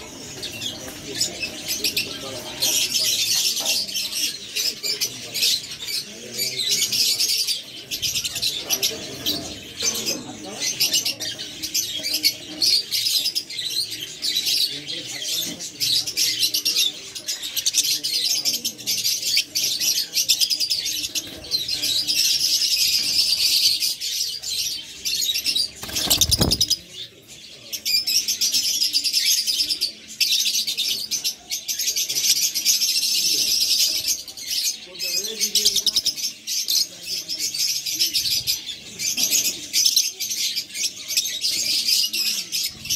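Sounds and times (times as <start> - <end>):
lovebirds chirping: 0.0 - 42.9.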